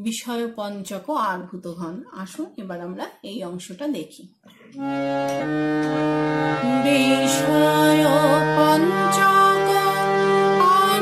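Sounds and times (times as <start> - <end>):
harmonium melody over drone: 4.8 - 11.0
woman singing: 6.6 - 11.0.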